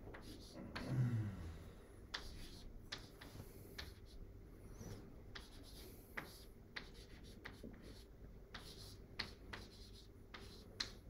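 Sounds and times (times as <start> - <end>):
chalk tapping and scratching: 0.0 - 0.9, 2.1 - 11.0.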